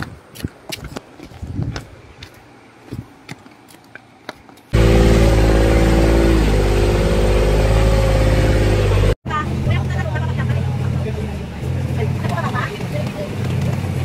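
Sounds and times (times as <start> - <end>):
low engine hum: 4.7 - 14.0
engine running loud: 4.8 - 12.4
voices: 9.3 - 14.0.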